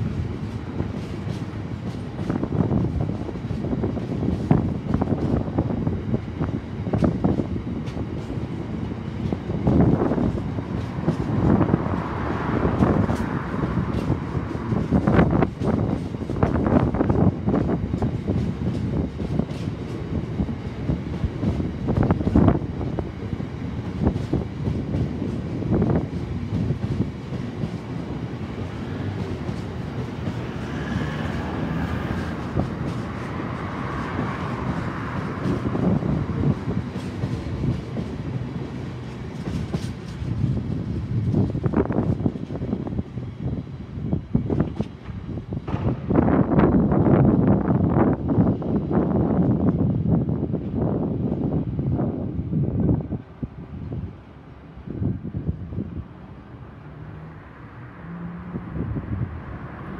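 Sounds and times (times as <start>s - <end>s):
train wheels clattering over rail joints: 0.0s - 5.8s, 6.4s - 43.2s, 44.1s - 47.3s
freight train rumble: 0.0s - 59.9s.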